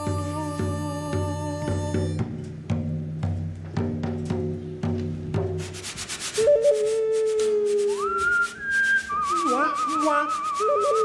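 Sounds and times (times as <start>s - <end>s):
scratchy percussion strokes: 0.0s - 11.0s
ocarina melody: 5.6s - 11.0s
whistled tune with vibrato: 6.4s - 11.0s.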